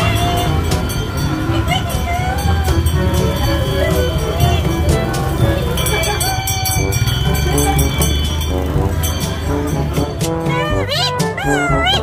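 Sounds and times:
high wavering melody: 0.0s - 12.0s.

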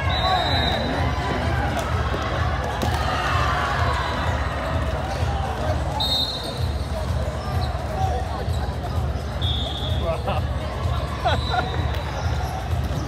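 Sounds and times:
sneakers squeaking on floor: 6.0s - 10.0s.

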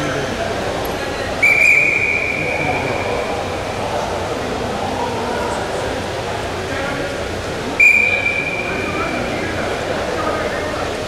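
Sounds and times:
referee's whistle long blast: 1.4s - 3.3s, 7.8s - 9.3s.

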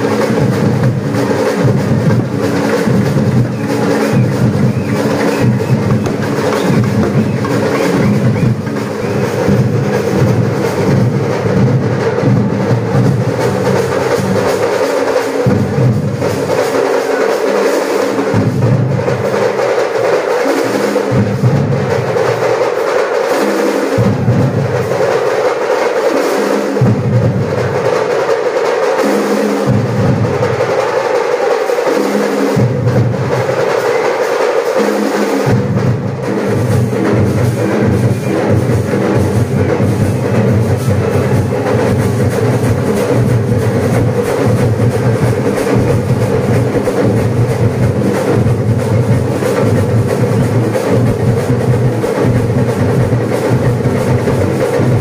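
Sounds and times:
temple drumming: 0.0s - 55.0s.

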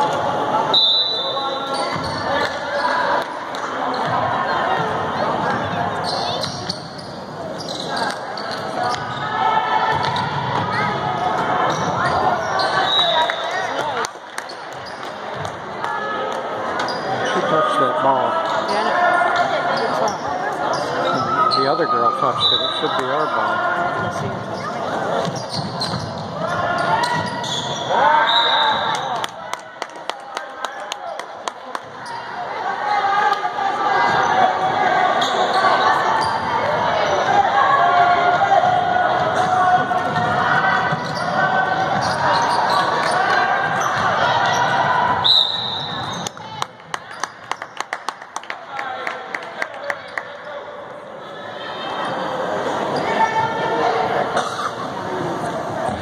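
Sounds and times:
people shouting and talking: 0.0s - 56.0s.

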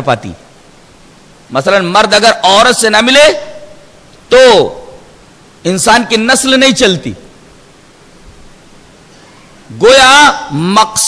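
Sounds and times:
steady background hiss: 0.0s - 11.0s
man speaking: 1.5s - 7.3s, 9.7s - 11.0s.

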